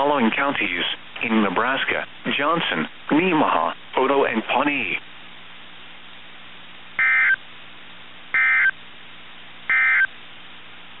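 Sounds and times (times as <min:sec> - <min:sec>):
digital data tone bursts: 0:07.0 - 0:07.4, 0:08.4 - 0:08.8, 0:09.7 - 0:10.1.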